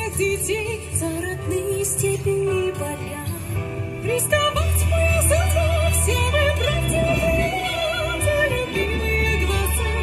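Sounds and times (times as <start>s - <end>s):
woman singing with vibrato: 4.1s - 10.0s.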